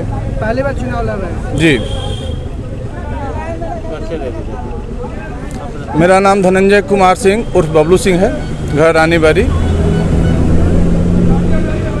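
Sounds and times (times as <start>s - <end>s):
faint crowd chatter: 0.0s - 12.0s
vehicle engine humming: 0.0s - 12.0s.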